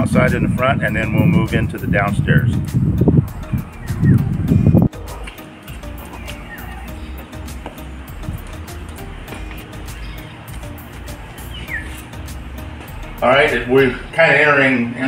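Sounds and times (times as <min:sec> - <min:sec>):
man speaking: 0:00.0 - 0:02.6, 0:13.2 - 0:15.0
background music with steady beat: 0:00.0 - 0:15.0.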